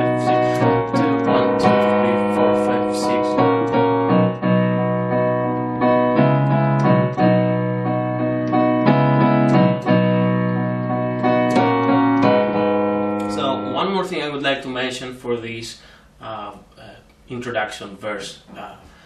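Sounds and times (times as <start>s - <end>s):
piano chords: 0.0s - 15.2s.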